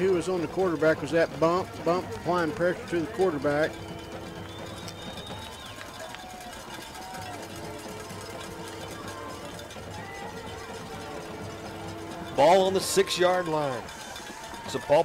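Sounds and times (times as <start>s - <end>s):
faint crowd voices: 0.0s - 15.0s
faint music from stands: 0.0s - 15.0s.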